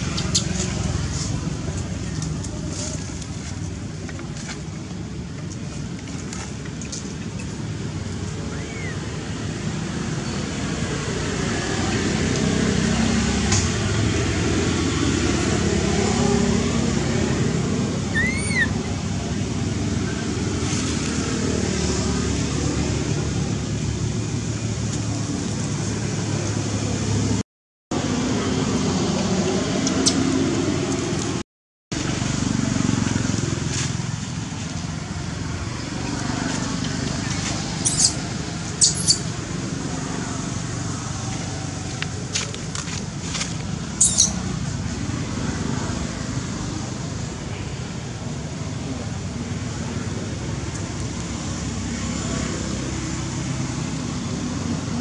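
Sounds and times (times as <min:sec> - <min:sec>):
road traffic rumble: 0:00.0 - 0:55.0
monkey squealing: 0:18.1 - 0:18.9, 0:37.8 - 0:39.3, 0:44.0 - 0:44.4.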